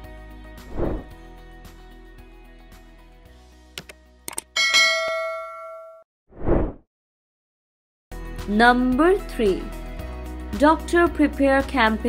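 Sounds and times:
short whoosh: 0:00.7 - 0:01.1, 0:06.4 - 0:06.8
mouse clicks: 0:03.8 - 0:04.5
bright bell ding: 0:04.6 - 0:06.0.

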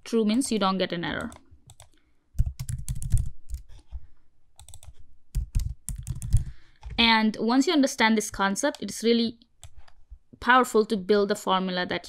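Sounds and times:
typing on computer keyboard: 0:01.2 - 0:04.0, 0:04.6 - 0:07.0.

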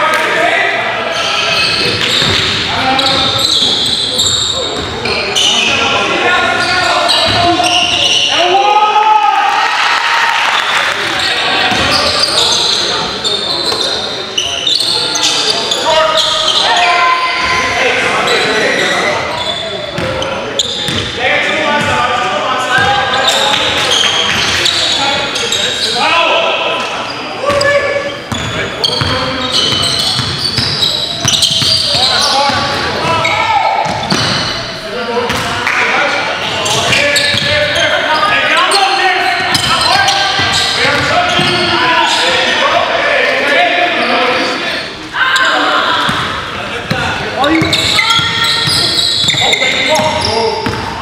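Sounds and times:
players calling out: 0:00.0 - 0:51.0
sneakers squeaking: 0:00.8 - 0:08.6, 0:10.5 - 0:22.0, 0:22.6 - 0:51.0.

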